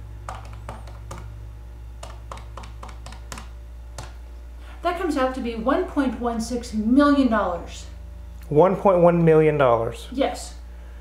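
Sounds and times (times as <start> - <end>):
steady low hum: 0.0 - 11.0
calculator keys clicking: 0.2 - 1.3, 2.0 - 4.1.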